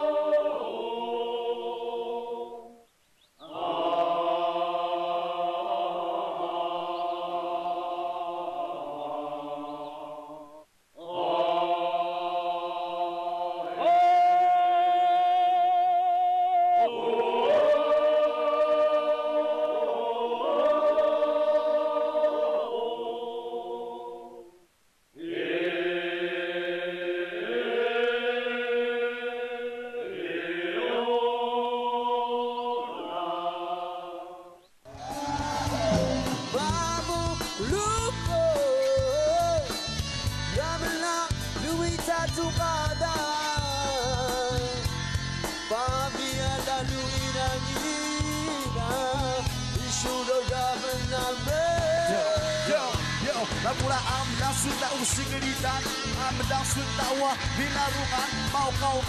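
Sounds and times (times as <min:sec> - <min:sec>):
voices singing a slow chant: 0:00.0 - 0:39.9, 0:40.6 - 0:59.0
group of voices chanting: 0:30.0 - 0:37.4
voice sliding into sustained note: 0:34.9 - 0:37.3
band music with guitar: 0:34.9 - 0:59.0.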